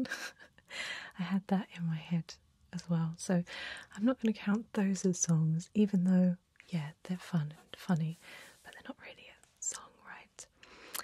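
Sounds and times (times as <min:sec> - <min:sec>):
woman whispering: 0:06.7 - 0:10.5.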